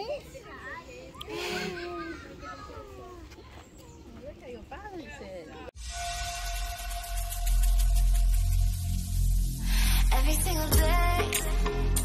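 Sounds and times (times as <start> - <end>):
children chattering and calling out: 0.0 - 5.8.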